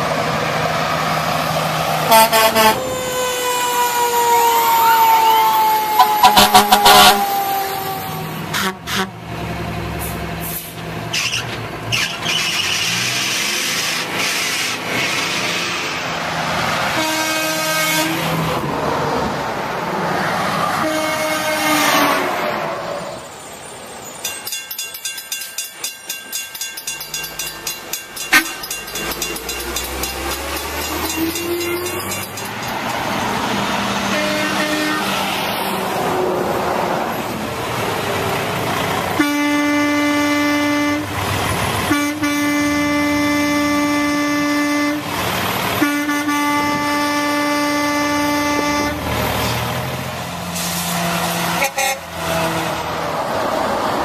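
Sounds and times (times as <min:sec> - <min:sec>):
road traffic noise: 0:00.0 - 0:54.0
truck air horn blasts: 0:02.0 - 0:09.2, 0:16.9 - 0:18.4, 0:20.8 - 0:22.4, 0:28.3 - 0:28.6, 0:34.0 - 0:35.3, 0:39.2 - 0:49.2, 0:51.4 - 0:52.9.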